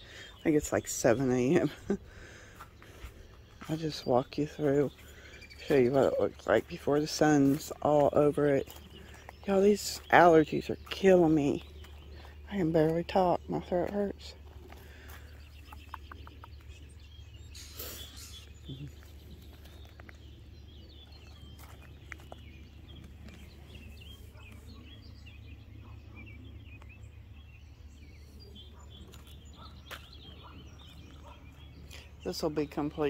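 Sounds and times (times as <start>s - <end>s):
birds chirping and calling: 0.0s - 33.0s.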